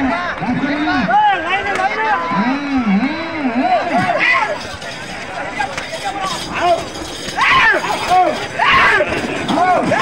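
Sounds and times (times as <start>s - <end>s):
men shouting: 0.0s - 10.0s.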